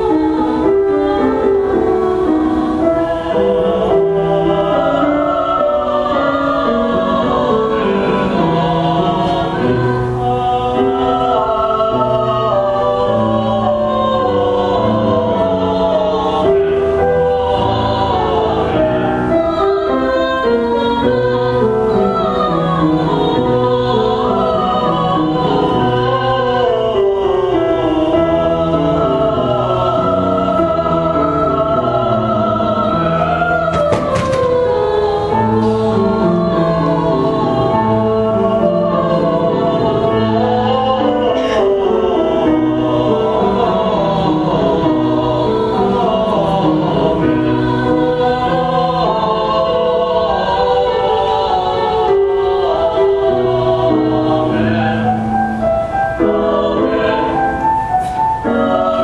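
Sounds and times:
man and woman singing duet: 0:00.0 - 0:59.0.

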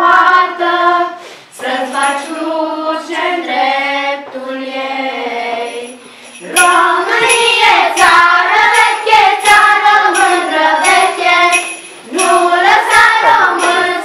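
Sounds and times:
children singing in unison: 0:00.0 - 0:14.0.

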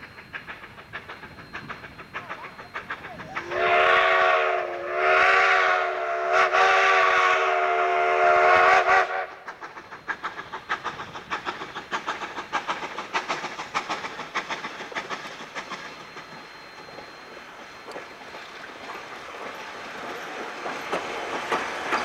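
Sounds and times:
train rhythmic beats: 0:00.0 - 0:22.0
steam locomotive whistle: 0:02.2 - 0:09.5.

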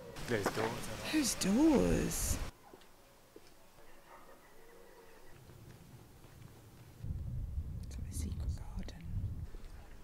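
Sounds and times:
wind rumble on microphone: 0:07.0 - 0:10.0
person whispering: 0:08.0 - 0:09.1.

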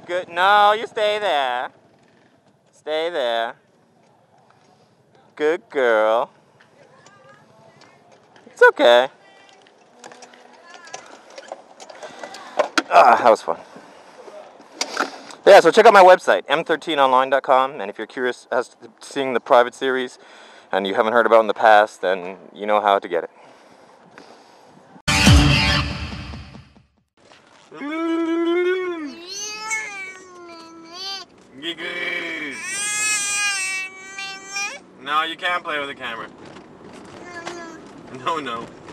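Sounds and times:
baby crying: 0:29.0 - 0:31.3, 0:32.2 - 0:34.8
baby squealing: 0:29.1 - 0:31.3, 0:32.4 - 0:34.9.

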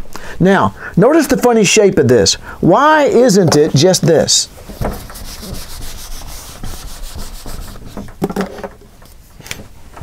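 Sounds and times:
eraser rubbing on whiteboard: 0:04.7 - 0:08.1.

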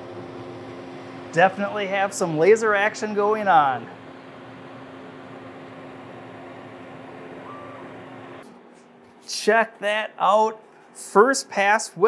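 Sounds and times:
laser cutter whirring hum: 0:00.0 - 0:08.4
short high whine: 0:01.0 - 0:08.4.

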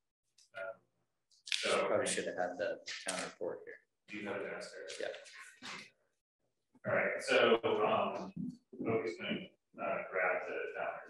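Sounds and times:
man speaking: 0:01.5 - 0:05.8, 0:06.8 - 0:11.0.

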